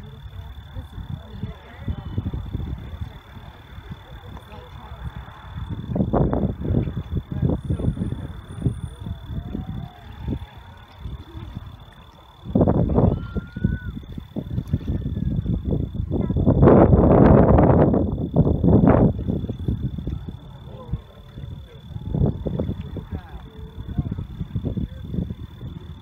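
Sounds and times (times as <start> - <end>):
distant rocket engine roar: 0.0 - 26.0.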